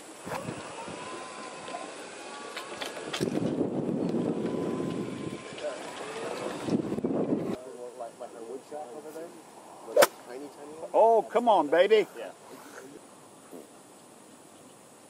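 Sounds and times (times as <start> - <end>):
golf cart running rumble: 0.0 - 7.6
wind on microphone: 0.2 - 1.2, 3.0 - 5.6, 6.2 - 7.6.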